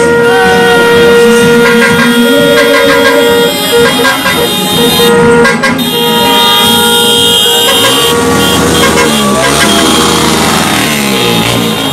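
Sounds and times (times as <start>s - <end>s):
vehicle horns honking: 0.0s - 11.9s
voices: 0.2s - 11.9s.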